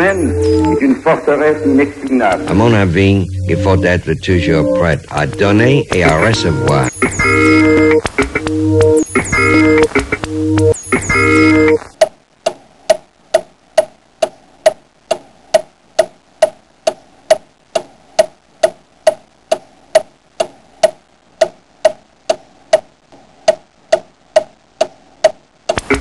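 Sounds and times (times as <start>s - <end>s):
steady clock ticking: 1.7s - 26.0s.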